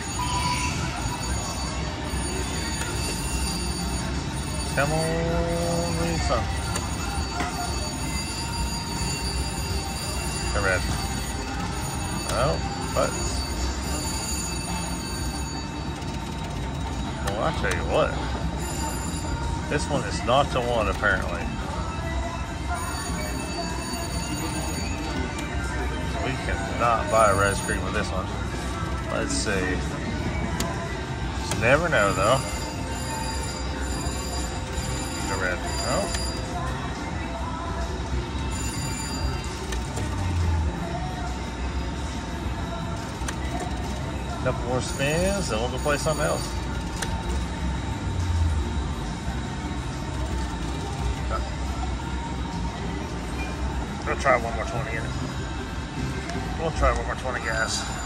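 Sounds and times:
low hum of casino floor: 0.0s - 58.0s
slot machine ringing tones: 0.0s - 58.0s.

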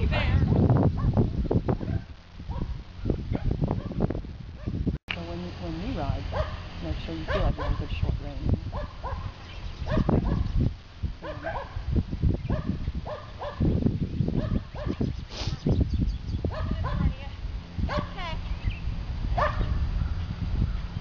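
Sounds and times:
dog barking: 1.8s - 4.0s, 4.6s - 4.8s, 6.3s - 6.7s, 7.3s - 7.9s, 8.7s - 10.5s, 11.2s - 11.8s, 12.5s - 13.7s, 14.4s - 15.0s, 16.5s - 17.2s, 17.9s - 18.2s, 19.4s - 19.9s.

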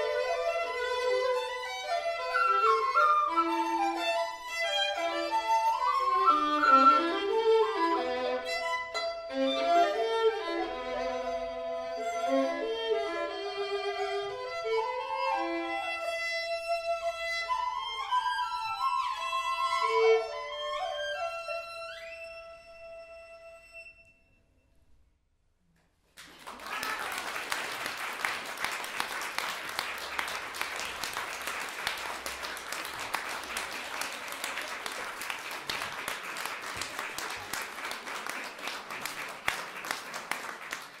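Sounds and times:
violin: 0.0s - 24.2s
flute: 1.7s - 7.9s, 15.2s - 24.5s
audience applause: 26.2s - 41.0s.

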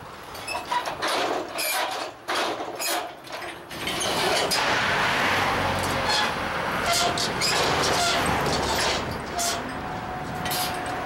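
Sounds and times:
vehicle passing by: 4.0s - 11.0s.

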